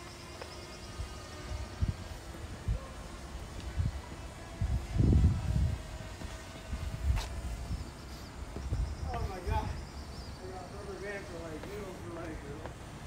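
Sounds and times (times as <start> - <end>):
low rumbling on microphone: 1.0 - 10.0.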